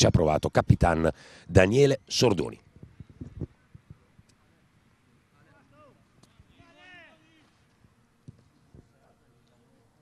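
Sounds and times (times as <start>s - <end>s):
distant players shouting: 5.4s - 7.6s.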